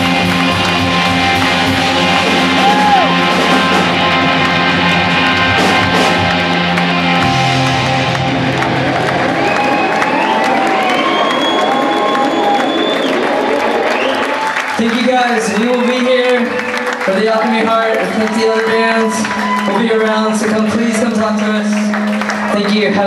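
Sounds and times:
crowd cheering: 0.0s - 23.0s
live rock band: 0.0s - 23.0s.

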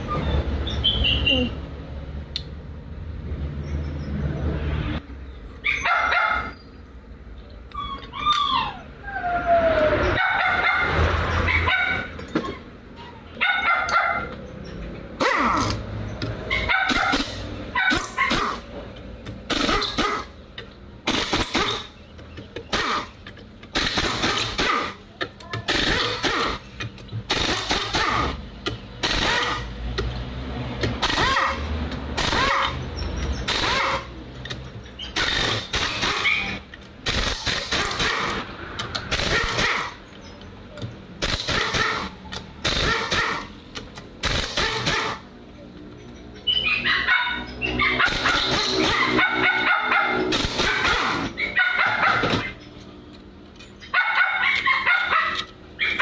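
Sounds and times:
dog barking: 5.7s - 6.6s, 10.2s - 12.1s, 13.4s - 14.3s, 15.2s - 15.7s, 16.5s - 18.6s, 31.2s - 31.7s, 32.4s - 32.8s, 33.6s - 34.1s, 39.3s - 40.0s, 41.6s - 42.1s, 42.8s - 43.5s, 44.6s - 45.2s, 46.6s - 52.5s, 53.9s - 56.0s
pneumatic impact wrench bursts: 19.4s - 20.4s, 21.0s - 22.0s, 22.6s - 25.0s, 25.6s - 29.8s, 31.0s - 34.2s, 35.0s - 40.0s, 41.2s - 43.6s, 44.2s - 45.2s, 48.0s - 49.2s, 50.3s - 51.4s.

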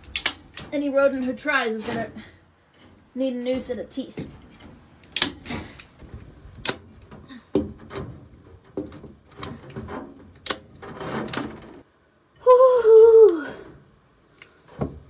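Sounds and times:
wire mesh scraping and rattling: 0.0s - 11.9s.

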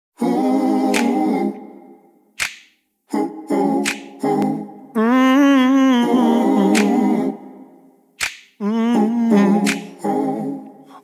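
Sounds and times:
a cappella voices singing: 0.2s - 11.0s
finger snap: 0.9s - 1.6s, 2.4s - 2.8s, 3.8s - 4.6s, 6.7s - 7.3s, 8.2s - 8.6s, 9.6s - 10.8s.

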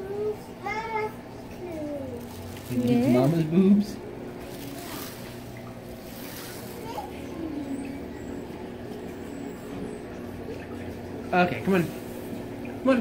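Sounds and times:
aquarium filter hum: 0.0s - 13.0s
faint trickling water: 0.0s - 13.0s.

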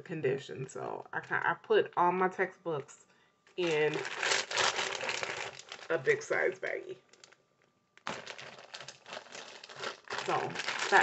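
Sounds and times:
plastic bag crinkling: 3.6s - 7.4s, 8.0s - 11.0s.

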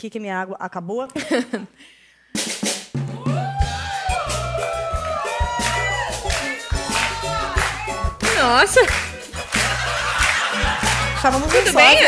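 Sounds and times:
music: 2.3s - 12.0s.

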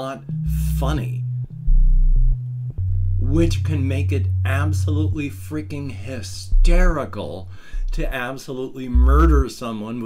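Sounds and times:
synthesizer bass line: 0.3s - 8.2s, 8.9s - 9.5s.

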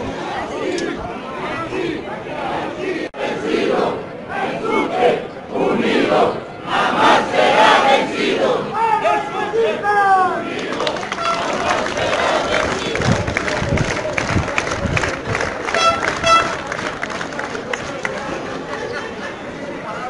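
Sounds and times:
crowd shouting: 0.0s - 13.6s.

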